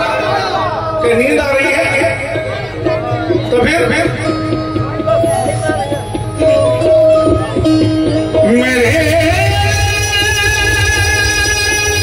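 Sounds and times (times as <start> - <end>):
sustained instrumental notes: 0.0 - 12.0.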